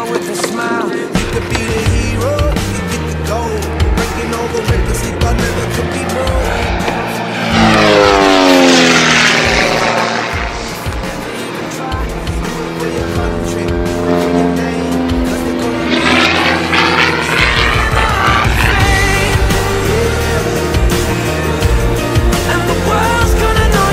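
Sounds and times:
biplane engine and propeller passing: 0.0s - 23.9s
music: 0.0s - 23.9s.

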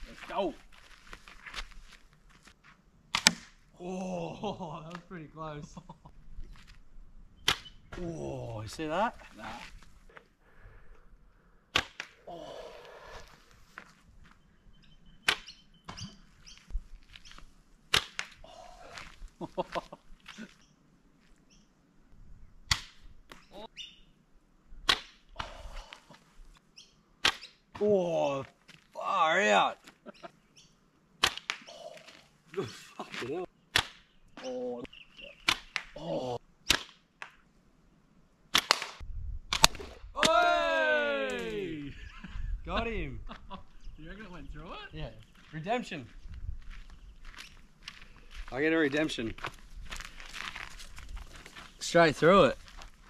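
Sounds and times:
slingshot cracks: 3.1s - 3.6s, 11.7s - 12.2s, 17.9s - 18.4s, 22.7s - 23.0s, 24.9s - 25.5s, 27.2s - 27.5s, 31.2s - 31.7s, 33.7s - 34.1s, 35.4s - 36.0s, 36.7s - 37.4s, 38.5s - 40.4s
slingshot rubber bands snapping: 38.6s - 40.0s.

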